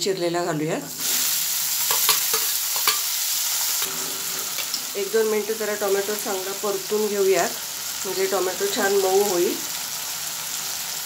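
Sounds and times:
tomato sizzling in hot oil: 0.1 - 11.0
metal spoon clinking on pan: 1.9 - 3.2.

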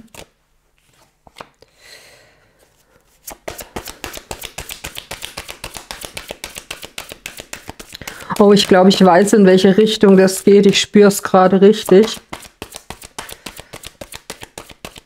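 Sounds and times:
cards shuffling papery clicks: 0.0 - 1.6, 3.2 - 15.0
cards sliding: 3.1 - 10.8, 11.8 - 15.0.

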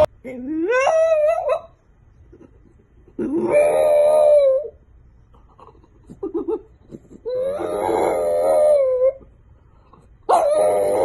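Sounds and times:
dog howling: 3.2 - 4.8, 7.2 - 9.3, 10.3 - 11.0.

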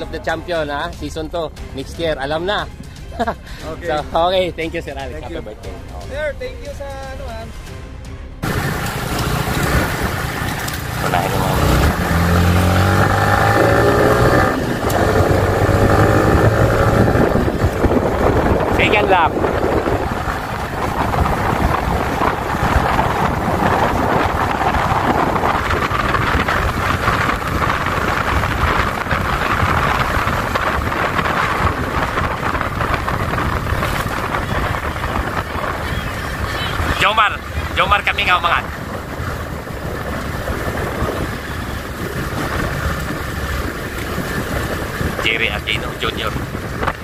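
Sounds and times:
low road rumble: 0.0 - 47.0
wind rushing over microphone: 8.4 - 47.0.

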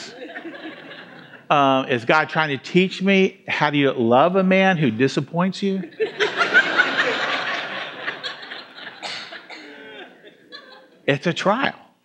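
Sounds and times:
congregation laughing: 0.0 - 1.5, 5.8 - 11.1.

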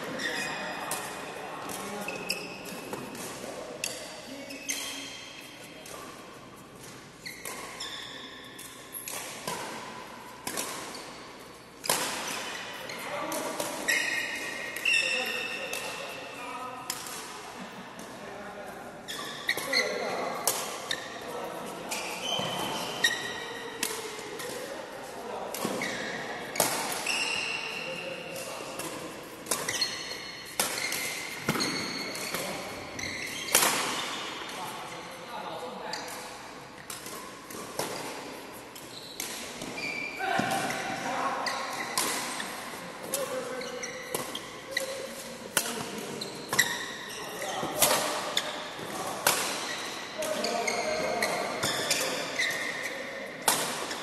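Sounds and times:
rackets smacking shuttlecock: 8.5 - 16.2, 19.4 - 21.2, 21.9 - 24.8, 25.5 - 34.6, 36.0 - 54.0.

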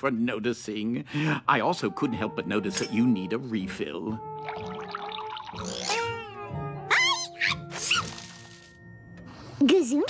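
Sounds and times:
background music: 0.0 - 10.0
high-pitched rising cartoon cries: 5.8 - 8.2.

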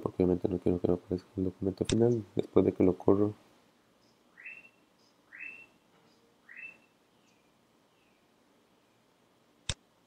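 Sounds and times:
bird whistling rising notes: 4.3 - 5.8, 6.4 - 7.0.

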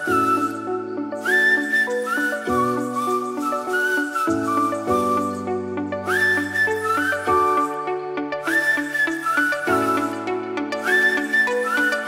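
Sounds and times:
light tune with whistled melody: 0.0 - 12.0.

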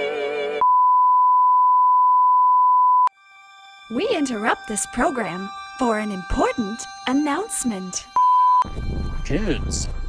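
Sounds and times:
steady test tone beep: 0.6 - 3.1, 3.9 - 8.8.

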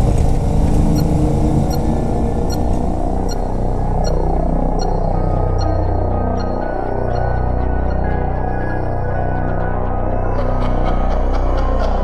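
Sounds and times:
low throbbing drone: 0.0 - 12.0.

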